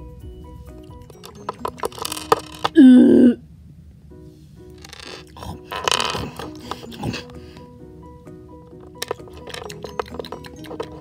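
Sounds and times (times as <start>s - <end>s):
person burping loudly: 2.5s - 3.4s.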